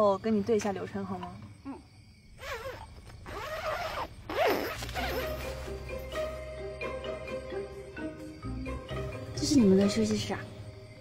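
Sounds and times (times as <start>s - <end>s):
tent zipper being unzipped: 2.4s - 5.8s
soft background music: 4.4s - 11.0s.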